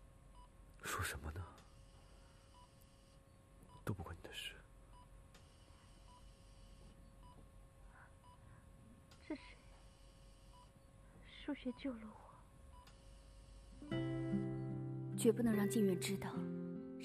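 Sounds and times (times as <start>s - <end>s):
faint steady hum: 0.0s - 17.0s
patient monitor beeping: 1.6s - 8.6s, 9.2s - 15.0s.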